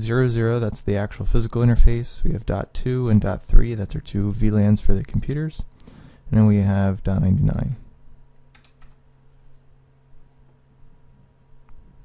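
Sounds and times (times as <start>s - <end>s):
low electrical hum: 0.0s - 12.0s
keyboard keystrokes: 8.5s - 9.0s.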